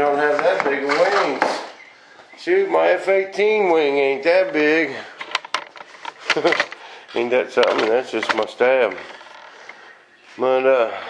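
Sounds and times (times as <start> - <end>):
man laughing: 6.2 - 6.8.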